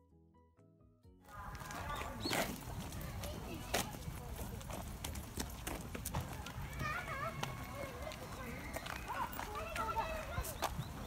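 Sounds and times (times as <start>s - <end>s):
footsteps on paved path: 1.2s - 11.0s
faint voices talking: 1.3s - 11.0s.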